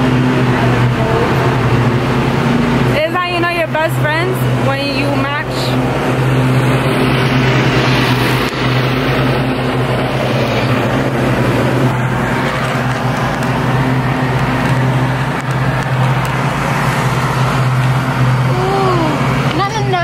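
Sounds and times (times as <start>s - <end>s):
lawn mower engine running: 0.0s - 20.0s.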